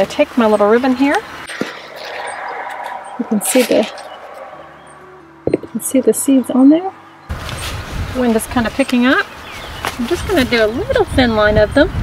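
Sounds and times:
wind blowing: 1.2s - 6.3s.

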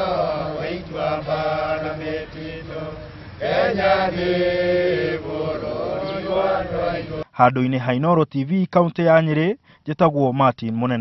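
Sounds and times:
voices singing a slow chant: 0.0s - 7.4s.

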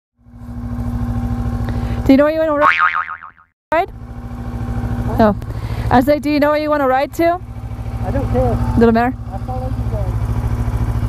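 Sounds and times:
motorcycle engine idling: 0.2s - 2.5s, 3.8s - 11.0s.

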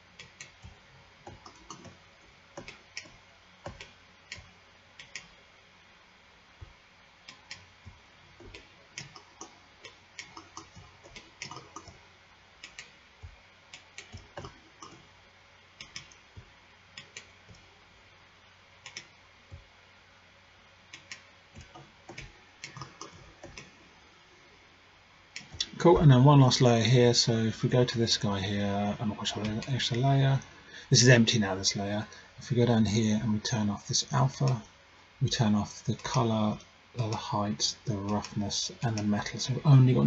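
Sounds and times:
faint steady hum: 0.0s - 40.0s.

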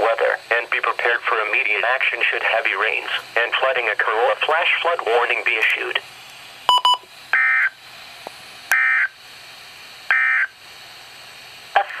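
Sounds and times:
button beeps: 6.7s - 7.0s.

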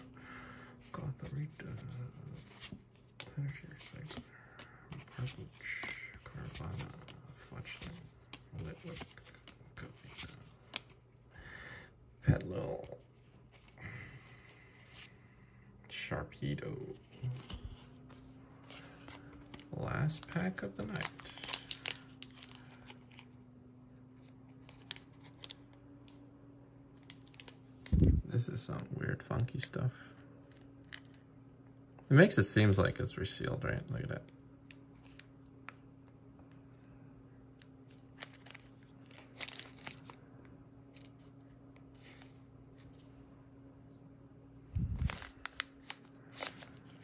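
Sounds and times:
faint low hum: 0.0s - 47.0s
foil wrapper crinkling and ripping: 19.3s - 23.3s, 38.0s - 40.2s, 44.8s - 47.0s.

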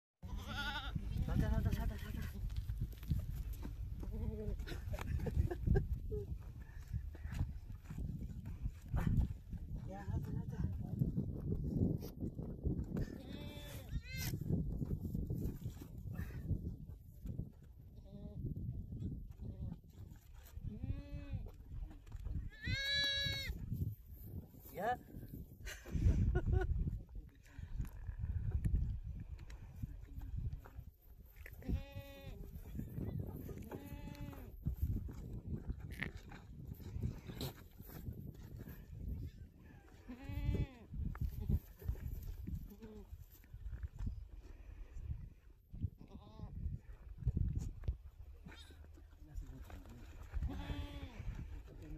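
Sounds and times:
goats bleating: 0.2s - 2.2s, 13.1s - 14.3s, 22.5s - 23.5s, 40.0s - 40.8s, 50.5s - 51.2s
wind rumble on microphone: 0.2s - 51.9s.

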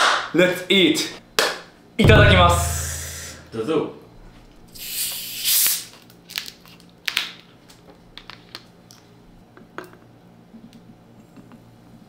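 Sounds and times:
bottle carbonation hiss: 4.8s - 5.9s.

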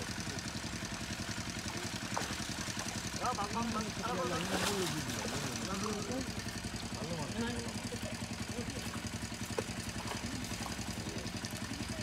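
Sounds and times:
small engine running: 0.0s - 12.0s
voices: 0.0s - 12.0s.

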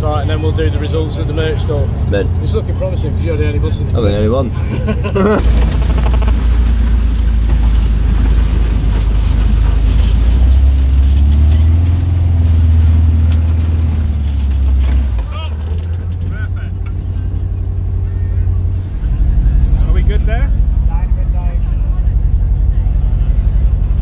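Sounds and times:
bus engine running: 0.0s - 24.0s.

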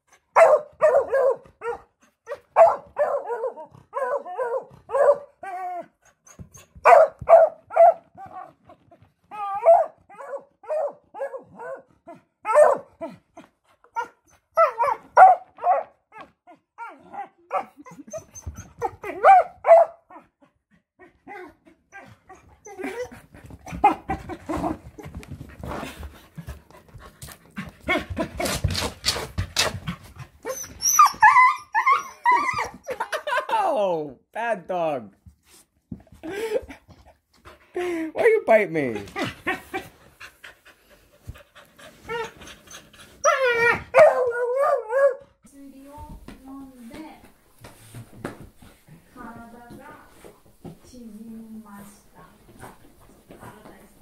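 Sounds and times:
dog yipping and barking: 0.4s - 8.5s, 9.3s - 13.0s, 13.9s - 20.2s, 30.4s - 33.1s, 43.2s - 45.2s
rustling and shuffling: 22.2s - 31.3s, 35.1s - 37.7s, 38.6s - 44.0s, 45.5s - 54.0s.

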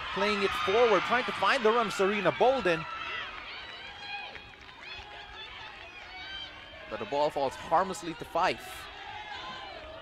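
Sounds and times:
low crowd noise: 0.0s - 10.0s.

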